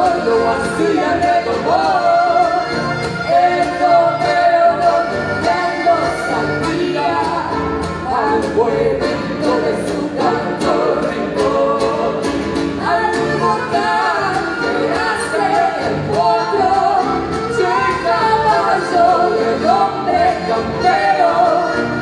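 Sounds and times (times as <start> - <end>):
accordion: 0.0 - 22.0
acoustic guitars: 0.0 - 22.0
woman singing: 0.0 - 22.0.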